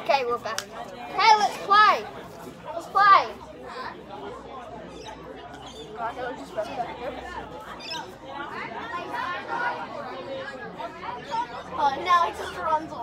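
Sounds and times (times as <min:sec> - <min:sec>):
indistinct voices chattering: 0:00.0 - 0:13.0.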